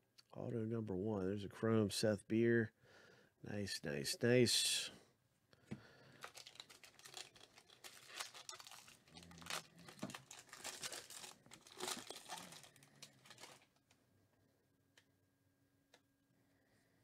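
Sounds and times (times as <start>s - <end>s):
foil wrapper crinkling and tearing: 6.1s - 13.8s.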